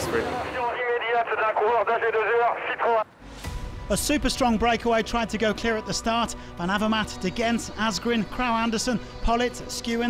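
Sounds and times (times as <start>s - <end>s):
man speaking: 0.0s - 3.1s
background music: 2.2s - 10.0s.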